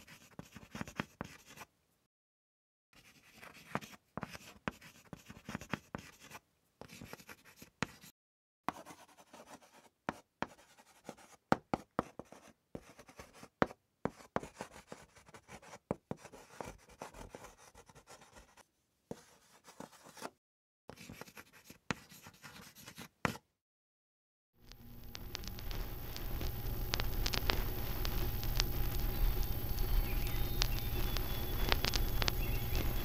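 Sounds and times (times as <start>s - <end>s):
pen scratching on paper: 0.0s - 1.7s, 3.0s - 8.1s, 8.7s - 20.3s, 20.9s - 23.4s.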